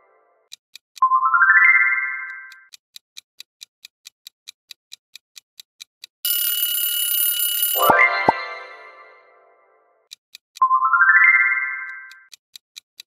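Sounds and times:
clock ticking quickly: 0:00.5 - 0:01.1, 0:02.3 - 0:07.1, 0:10.0 - 0:10.6, 0:12.1 - 0:13.0
alarm clock bell ringing: 0:06.3 - 0:09.2
rising synth chime: 0:07.8 - 0:09.4.

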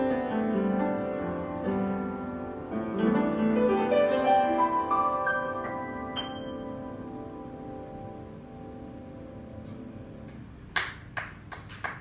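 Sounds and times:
upright piano chord: 0:00.0 - 0:10.3
people clapping: 0:10.2 - 0:12.0.

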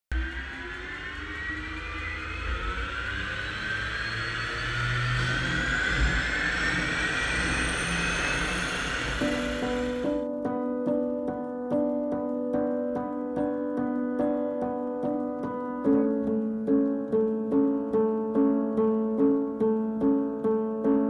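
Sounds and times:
turboprop turbine whine: 0:00.1 - 0:10.2
piano music: 0:04.8 - 0:21.0.

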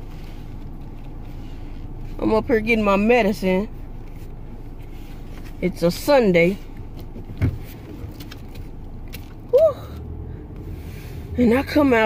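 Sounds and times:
car idling from inside: 0:00.0 - 0:12.0.

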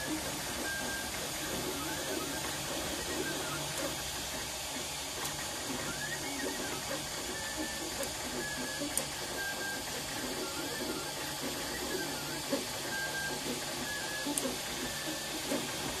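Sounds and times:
printer hiss and whirring: 0:00.0 - 0:16.0
stepper motors pitched notes: 0:00.0 - 0:16.0.

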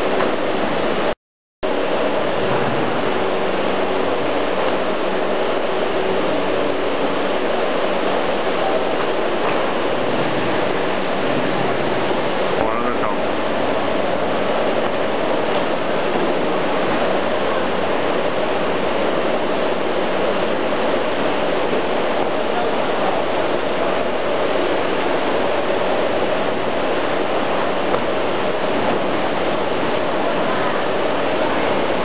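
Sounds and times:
factory machinery droning: 0:00.0 - 0:01.1, 0:01.7 - 0:32.0.

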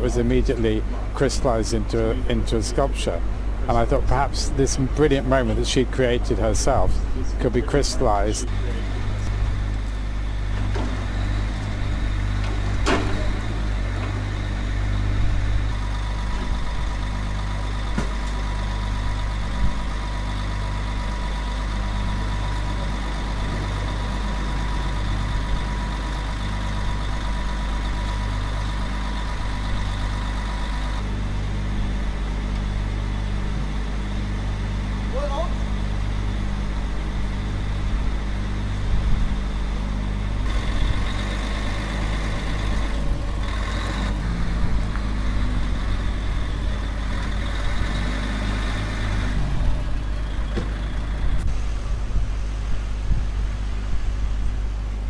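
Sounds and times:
truck engine idling: 0:00.0 - 0:55.0.

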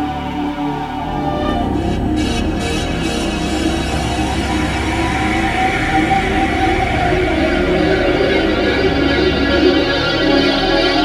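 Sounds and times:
dark synthesizer chords: 0:00.0 - 0:11.0
low pulsing synth rumble: 0:00.0 - 0:11.0.

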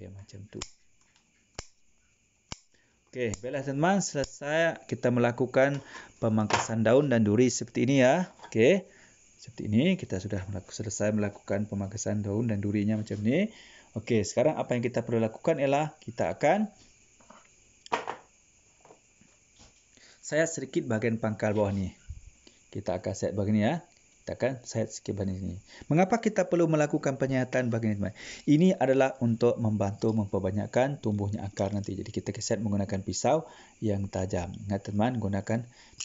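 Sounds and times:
scissors snipping: 0:01.5 - 0:01.8, 0:02.5 - 0:02.7.

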